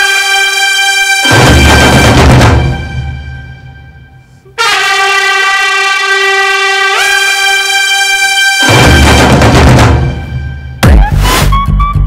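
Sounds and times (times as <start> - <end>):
sustained horn-like tone: 0.0 - 10.8.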